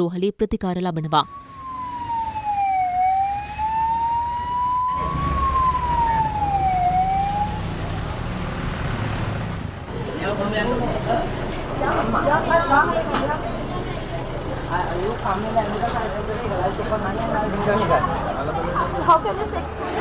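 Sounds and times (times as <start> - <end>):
ambulance siren wailing: 0.9 - 8.2
low vehicle noise: 1.3 - 20.0.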